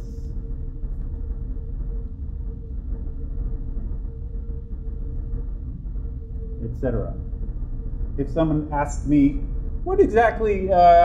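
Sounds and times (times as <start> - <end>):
faint constant hum: 0.0 - 11.0
low rumble: 0.0 - 11.0.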